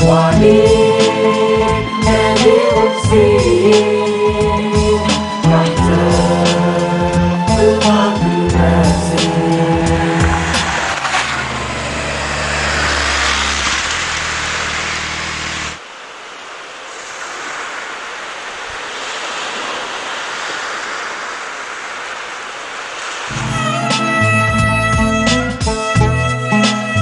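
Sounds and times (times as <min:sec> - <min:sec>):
music: 0:00.0 - 0:10.8, 0:23.3 - 0:27.0
rushing wind noise: 0:00.0 - 0:25.1
motorcycle engine running: 0:09.8 - 0:15.8.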